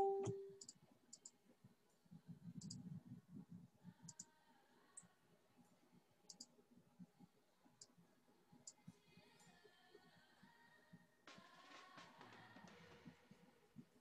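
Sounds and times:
computer mouse clicks: 2.6s - 2.9s, 4.1s - 4.3s, 6.3s - 6.5s.

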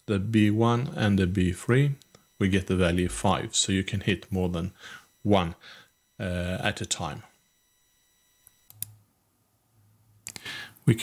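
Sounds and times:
low steady hum: 0.0s - 11.0s
computer mouse clicks: 8.4s - 9.0s.

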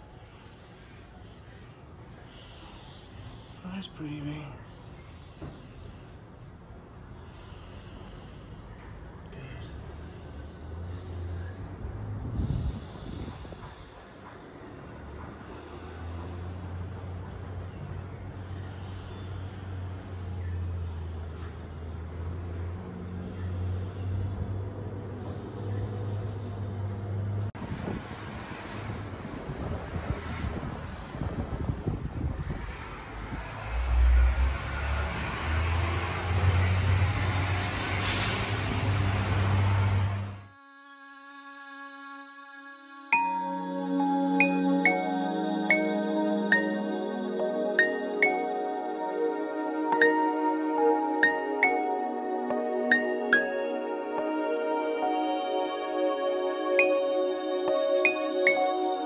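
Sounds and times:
low engine-like rumble: 0.0s - 40.5s.

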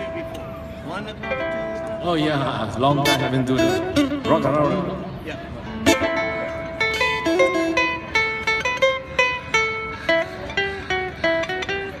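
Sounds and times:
electric guitar plucked notes: 2.8s - 12.0s
ukulele plucked notes: 5.7s - 10.2s.

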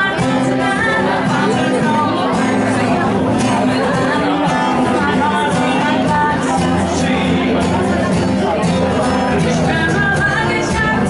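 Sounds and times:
acoustic guitar strumming: 0.0s - 11.0s
woman singing into a microphone: 0.0s - 11.0s.

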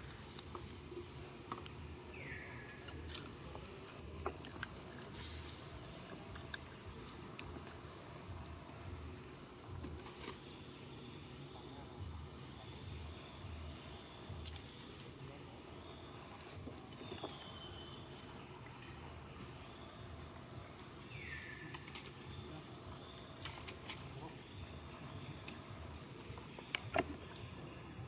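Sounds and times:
insects droning: 0.0s - 28.0s.

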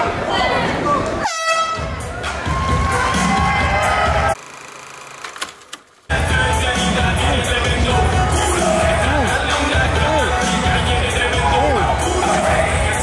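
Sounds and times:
crowd noise: 0.0s - 4.4s, 6.1s - 13.0s
air horn blast: 1.2s - 1.9s
background music: 1.3s - 4.4s, 6.1s - 13.0s.

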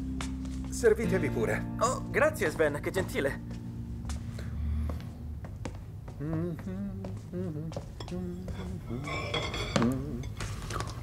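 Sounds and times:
soft voices: 6.1s - 11.0s.

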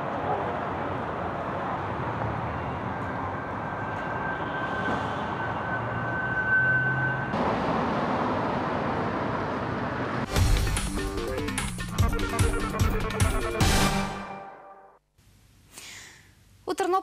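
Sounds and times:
city street traffic: 0.0s - 11.8s.

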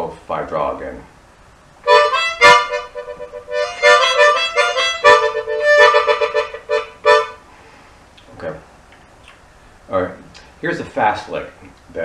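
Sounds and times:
harmonica playing blues: 1.8s - 7.4s.

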